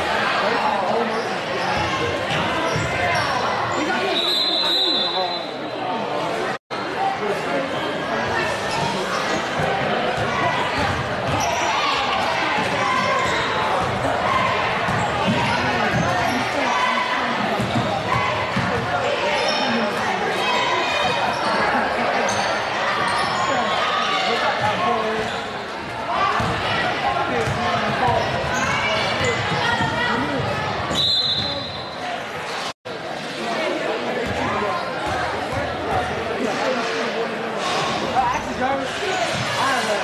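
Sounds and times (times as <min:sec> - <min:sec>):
referee's whistle: 0:04.1 - 0:05.6, 0:30.9 - 0:32.0.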